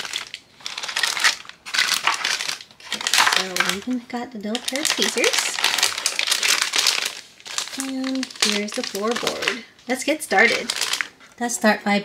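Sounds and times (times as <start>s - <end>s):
plastic bags crinkling: 0.0s - 11.4s.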